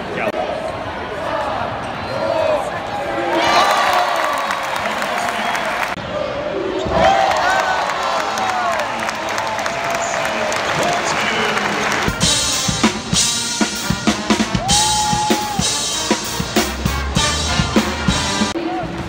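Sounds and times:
arena crowd noise: 0.0 - 19.0.

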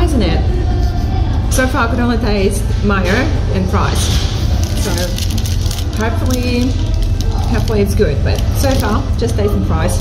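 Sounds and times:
steady low hum: 0.0 - 10.0
paper wrapper crinkling: 4.5 - 9.0.

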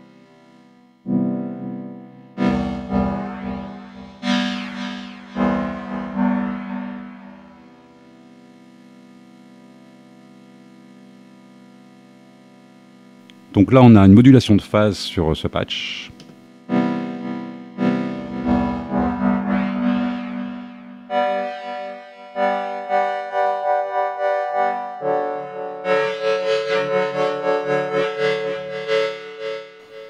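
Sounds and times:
synthesizer held notes: 1.1 - 9.7, 13.2 - 30.0.

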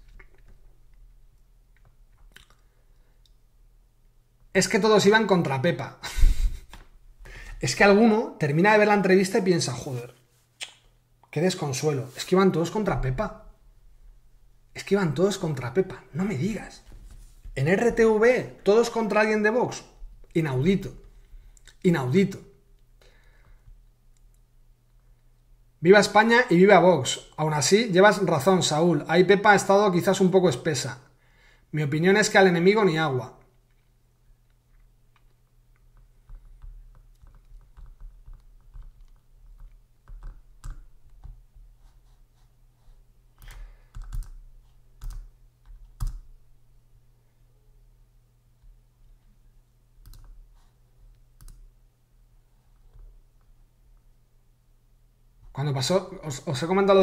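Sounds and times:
low steady hum: 0.0 - 57.0
computer keys typing: 36.0 - 41.4, 43.4 - 46.3, 50.0 - 50.4, 51.4 - 51.7
computer mouse clicks: 50.0 - 50.4, 51.4 - 51.7.

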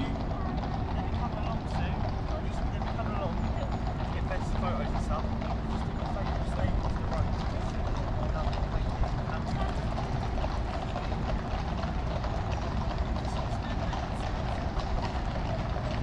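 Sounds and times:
distant traffic rumble: 0.0 - 16.0.

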